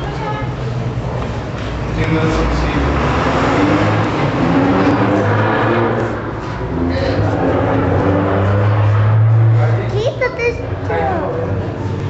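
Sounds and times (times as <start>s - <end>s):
crowd of overlapping voices: 0.0s - 12.0s.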